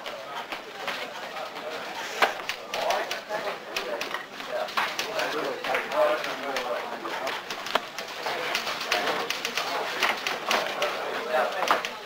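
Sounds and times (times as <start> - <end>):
background chatter: 0.0 - 12.0
scattered clicks and clatter: 0.0 - 12.0.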